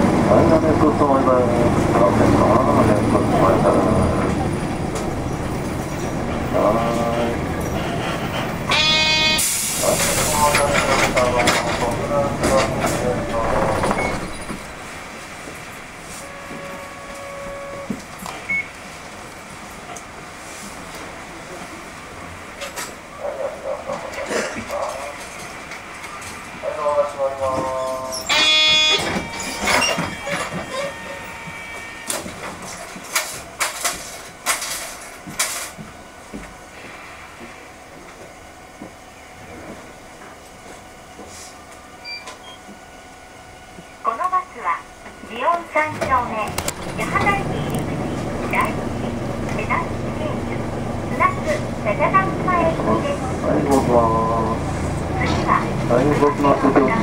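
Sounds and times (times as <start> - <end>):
diesel bus engine idling: 0.0 - 16.0, 42.8 - 57.0.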